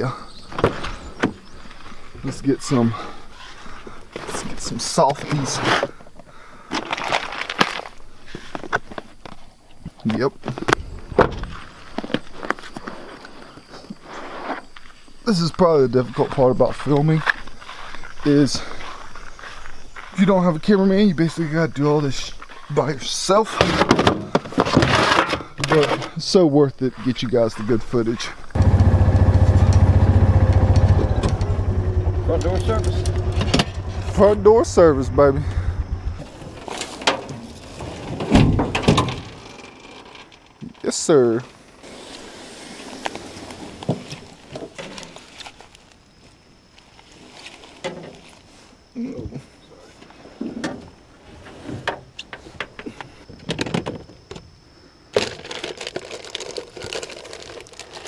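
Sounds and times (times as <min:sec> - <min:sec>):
footsteps: 0:16.0 - 0:20.7
plastic boxes clicking and rustling: 0:55.2 - 0:58.0.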